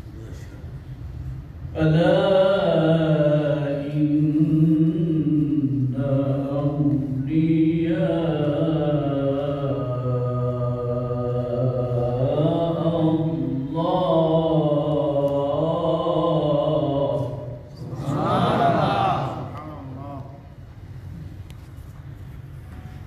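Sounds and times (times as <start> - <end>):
man chanting: 1.7 - 20.6.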